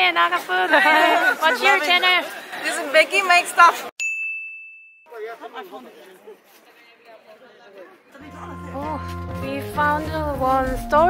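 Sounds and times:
faint voices: 5.4s - 9.9s.

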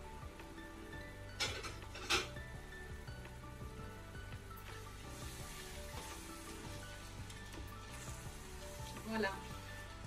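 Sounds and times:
food sizzling in a pot: 0.0s - 10.0s
soft background music: 0.0s - 10.0s.

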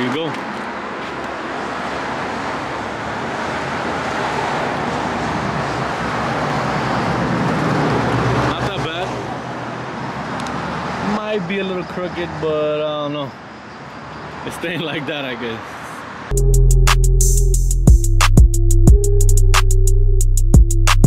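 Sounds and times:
vehicle passing: 0.0s - 16.3s
road traffic noise: 0.0s - 18.4s.

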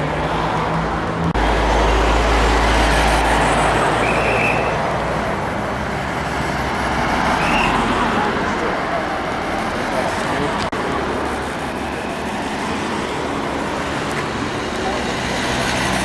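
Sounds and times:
road traffic hiss: 0.0s - 16.0s.

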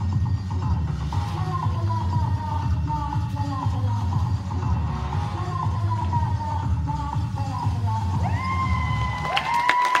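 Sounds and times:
dance music: 0.0s - 10.0s
audience cheering woo shouts: 8.2s - 10.0s
sharp claps: 9.2s - 10.0s.

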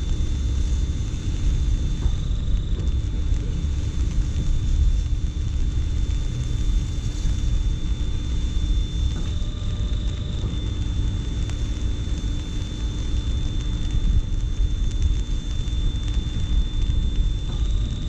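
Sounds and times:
faint high-pitched whine: 0.0s - 18.0s.

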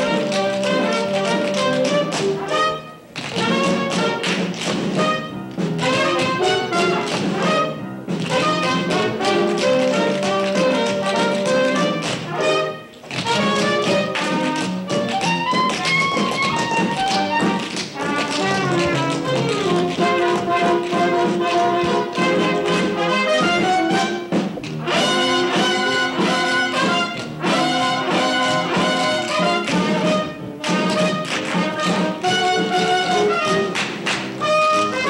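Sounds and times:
orchestra playing show tune: 0.0s - 35.0s
tap shoes on stage floor: 0.0s - 35.0s.

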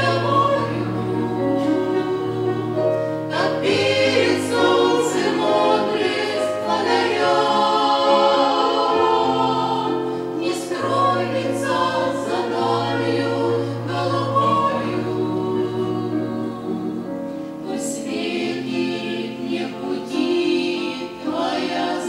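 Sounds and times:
women singing a hymn: 0.0s - 22.0s.

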